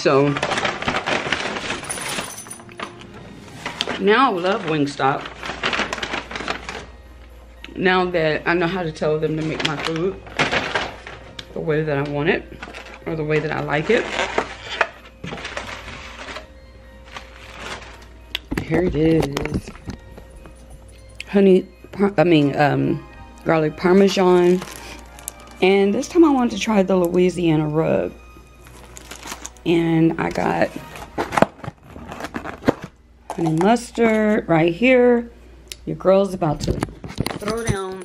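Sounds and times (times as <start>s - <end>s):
paper bag rustling: 0.0s - 7.0s, 9.3s - 11.4s, 12.0s - 20.7s, 23.8s - 26.7s, 28.5s - 29.7s, 30.3s - 34.4s.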